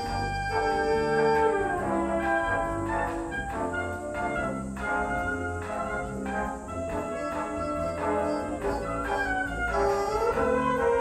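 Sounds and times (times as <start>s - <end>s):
concert band brass and woodwinds: 0.0s - 11.0s.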